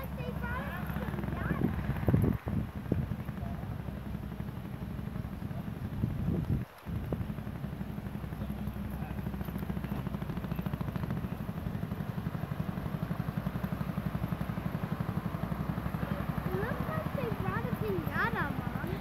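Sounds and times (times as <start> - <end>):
fire engine running at low speed: 0.0 - 19.0.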